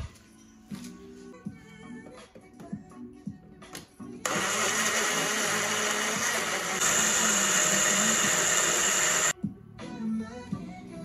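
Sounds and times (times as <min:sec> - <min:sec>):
blender motor running: 0:04.3 - 0:09.4.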